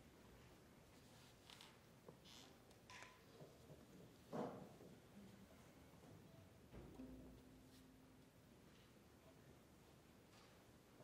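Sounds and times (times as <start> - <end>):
soft rustles: 0.2 - 2.6.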